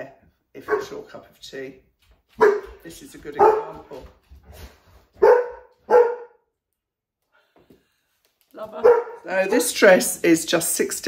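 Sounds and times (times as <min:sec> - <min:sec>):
dog barking: 0:00.6 - 0:01.0, 0:02.4 - 0:02.8, 0:03.4 - 0:04.0, 0:05.2 - 0:06.5, 0:08.8 - 0:09.3.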